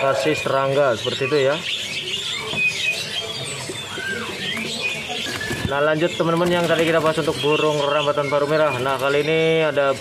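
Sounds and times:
background murmur: 0:00.0 - 0:10.0
songbirds chirping and whistling: 0:00.0 - 0:10.0.

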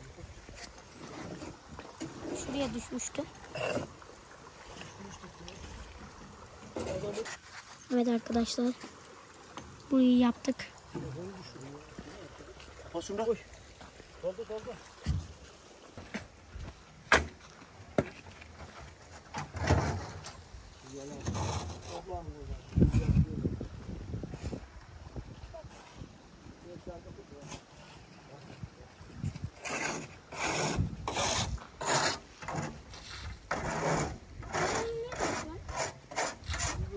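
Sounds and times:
stream running over stones: 0:00.0 - 0:36.9.

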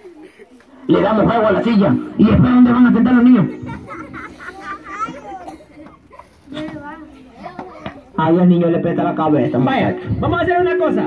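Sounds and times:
crowd chatter: 0:00.0 - 0:11.0
children's voices: 0:03.3 - 0:08.2.

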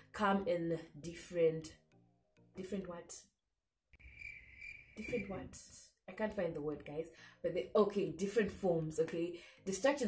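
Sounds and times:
insect trilling: 0:04.0 - 0:05.2.

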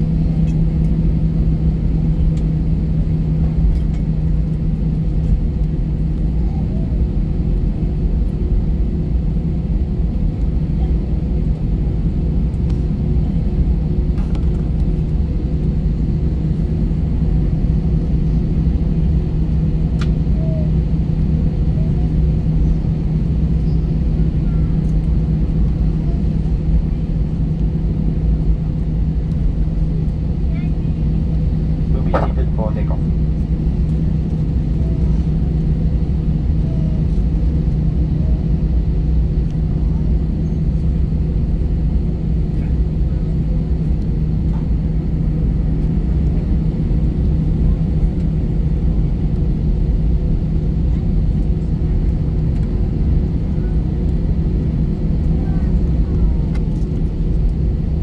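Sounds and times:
jet engines idling: 0:00.0 - 0:58.0.

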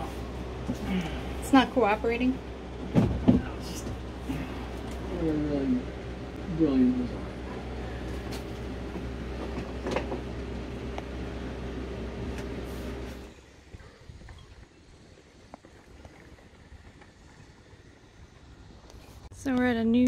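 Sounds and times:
faint outdoor background: 0:00.0 - 0:20.0
low mechanical hum: 0:00.0 - 0:20.0.

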